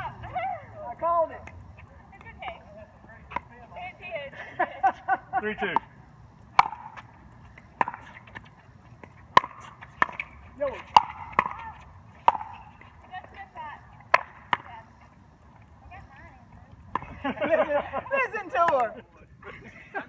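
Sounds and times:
paddles hitting plastic ball: 0:06.5 - 0:13.0, 0:14.0 - 0:14.7.

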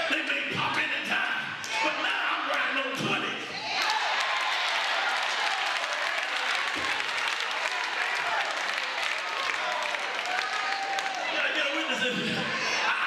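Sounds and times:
congregation applauding: 0:03.8 - 0:12.0.

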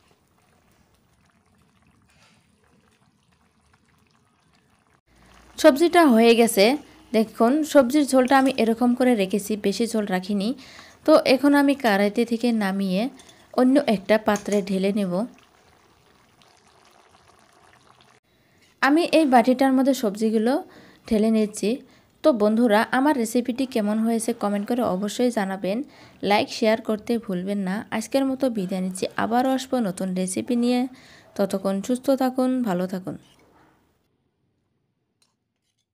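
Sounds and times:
curry bubbling as it simmers: 0:00.0 - 0:18.2, 0:21.1 - 0:30.2.

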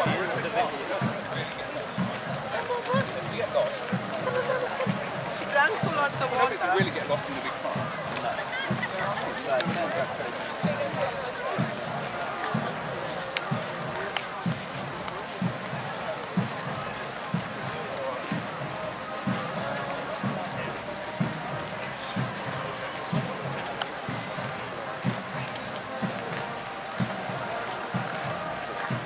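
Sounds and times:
crowd talking: 0:00.0 - 0:29.0.

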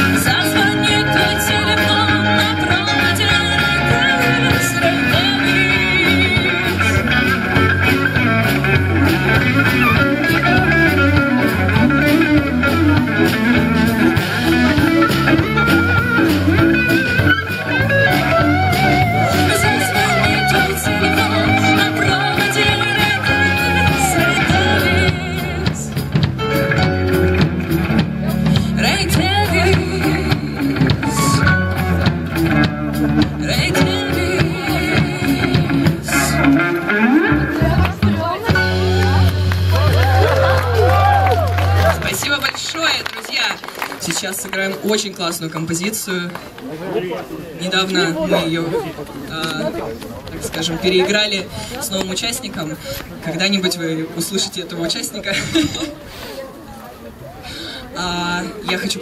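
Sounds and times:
drum kit: 0:00.0 - 0:42.2
keyboard: 0:00.0 - 0:43.0
bass guitar: 0:00.0 - 0:43.1
electric guitar: 0:00.0 - 0:44.9.

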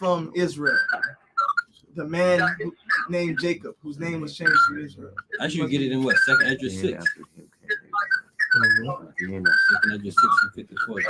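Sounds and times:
person talking: 0:02.0 - 0:07.9, 0:08.6 - 0:11.0.

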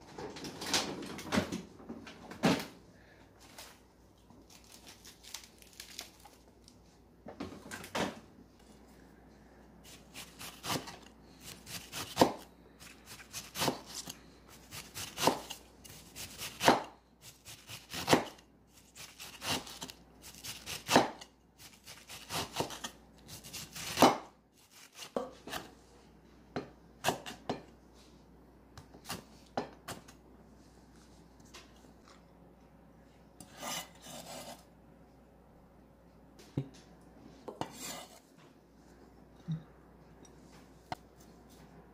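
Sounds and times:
knife slicing cabbage: 0:09.8 - 0:25.7, 0:33.4 - 0:34.6, 0:37.6 - 0:38.2.

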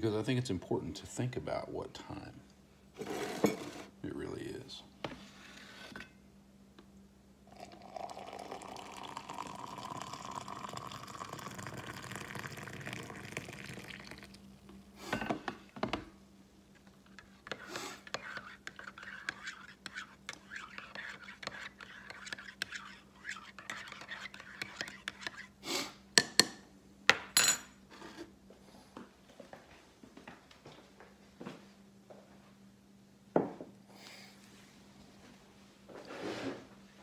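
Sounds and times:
coffee pouring into a mug: 0:07.5 - 0:14.5
spoon stirring and clinking: 0:17.1 - 0:25.5.

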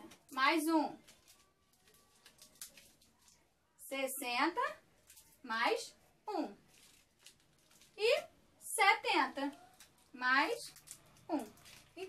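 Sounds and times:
woman speaking: 0:00.0 - 0:01.0, 0:03.8 - 0:04.8, 0:05.4 - 0:06.6, 0:08.0 - 0:12.0.

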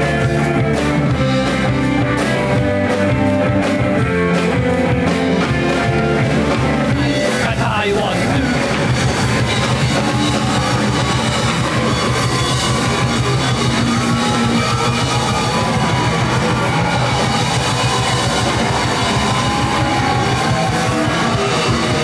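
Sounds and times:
drum kit: 0:00.0 - 0:22.0
electric guitars: 0:00.0 - 0:22.0.

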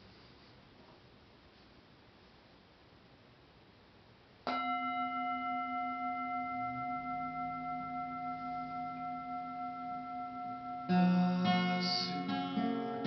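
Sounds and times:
singing bowl ringing: 0:04.5 - 0:13.0.

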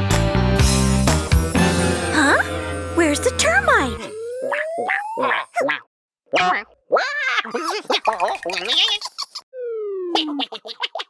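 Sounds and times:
rock band music: 0:00.0 - 0:03.8
rising cartoon glide effect: 0:01.6 - 0:05.6, 0:09.5 - 0:10.5
wordless wobbling cartoon voice: 0:03.0 - 0:09.4, 0:10.1 - 0:11.0.

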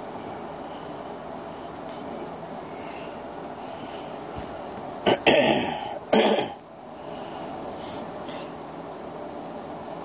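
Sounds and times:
person coughing: 0:05.0 - 0:06.6.

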